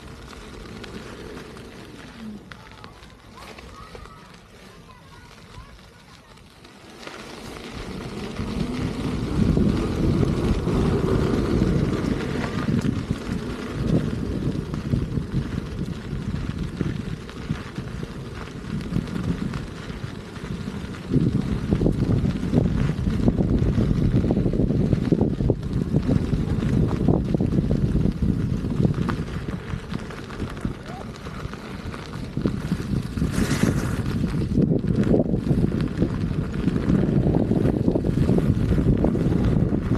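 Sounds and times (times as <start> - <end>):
wind buffeting microphone: 0.0 - 39.9.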